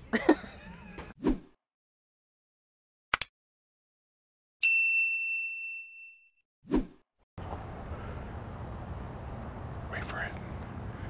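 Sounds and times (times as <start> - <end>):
bright bell ding: 4.6 - 6.4
outdoor background hiss: 7.4 - 11.0.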